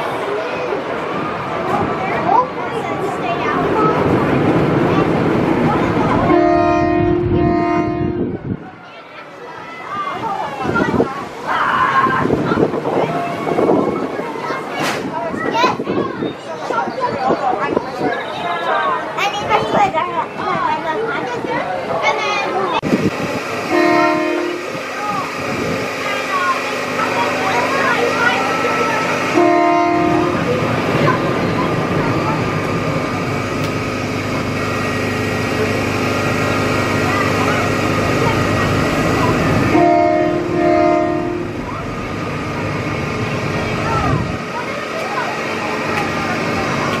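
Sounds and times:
roller coaster rumbling on track: 0:00.0 - 0:47.0
horn-like tone blasts: 0:06.3 - 0:08.3, 0:23.7 - 0:24.7, 0:29.3 - 0:30.5, 0:39.7 - 0:41.6.

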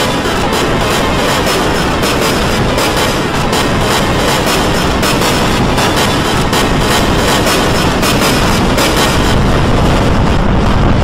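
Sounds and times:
dense layered soundtracks with music: 0:00.0 - 0:11.0.

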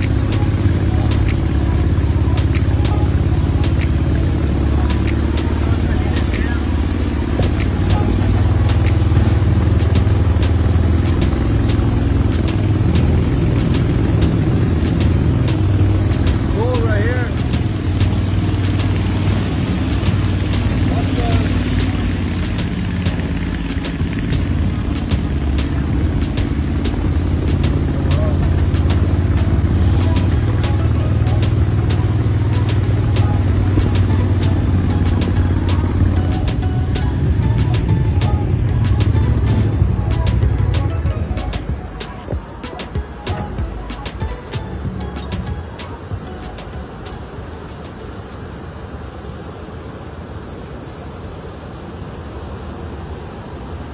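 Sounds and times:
music: 0:00.0 - 0:47.8
boat motor engine droning: 0:00.0 - 0:53.9.

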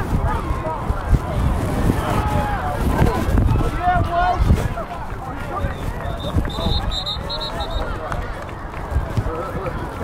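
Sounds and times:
spectators talking and calling out: 0:00.0 - 0:10.0
wind rumble on microphone: 0:00.0 - 0:10.0.

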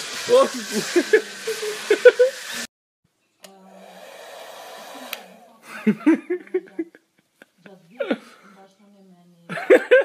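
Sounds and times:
hair dryer running: 0:00.0 - 0:02.7, 0:03.4 - 0:05.5.

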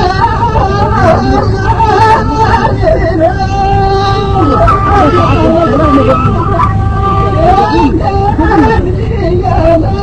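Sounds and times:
man singing ornamented melody: 0:00.0 - 0:10.0
reed flute long gliding notes: 0:00.0 - 0:10.0
steady low hum: 0:00.0 - 0:10.0.

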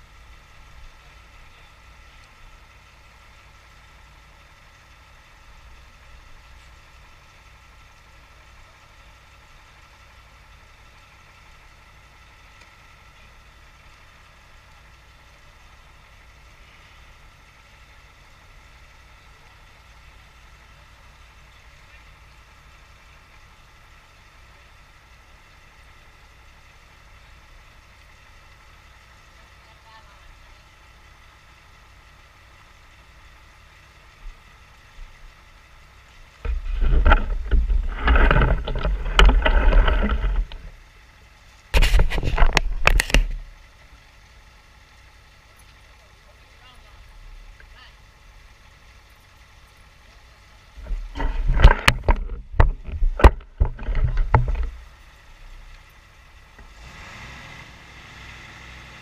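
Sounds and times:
faint engine hum: 0:00.0 - 0:59.0
camera handling rumble: 0:36.5 - 0:40.8, 0:41.8 - 0:43.4, 0:50.8 - 0:54.8.

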